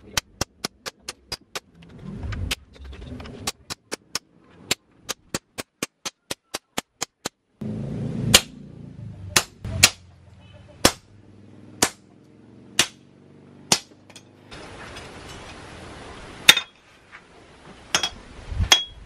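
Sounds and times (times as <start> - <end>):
hammer striking chisel on metal: 9.4 - 10.0, 11.8 - 12.0, 12.8 - 13.0, 13.7 - 14.3, 17.9 - 19.0.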